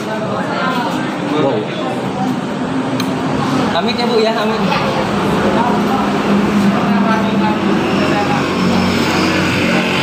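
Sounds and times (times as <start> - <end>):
vehicle engine humming: 1.9 - 10.0.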